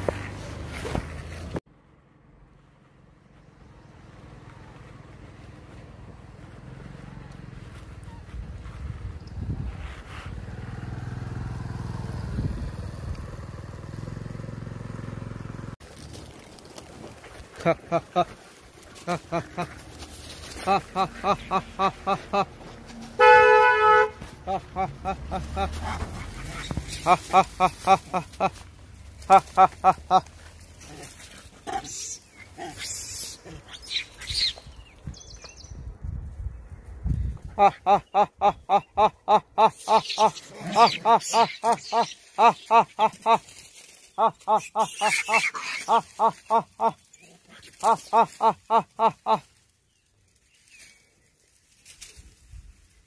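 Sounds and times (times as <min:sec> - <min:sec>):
vehicle engine running low: 0:00.0 - 0:32.6
people's voices: 0:17.5 - 0:22.8, 0:24.3 - 0:28.6
monkeys calling and squealing: 0:20.6 - 0:22.4, 0:24.5 - 0:28.5, 0:29.3 - 0:34.7, 0:37.6 - 0:49.4.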